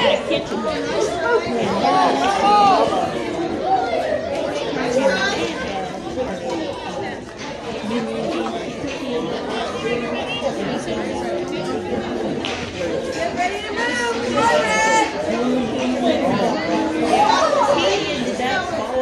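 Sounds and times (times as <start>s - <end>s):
several people talking at once: 0.0s - 19.0s.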